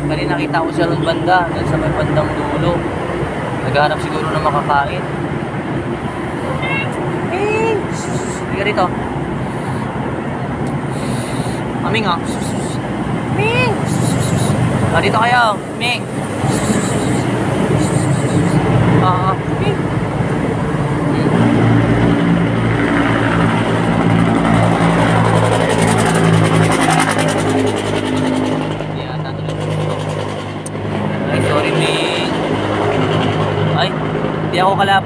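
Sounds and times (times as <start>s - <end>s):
engine running: 0.0s - 35.0s.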